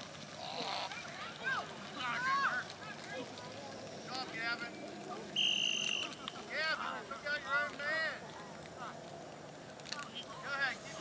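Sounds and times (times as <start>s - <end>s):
sports whistle blast: 5.4s - 6.2s.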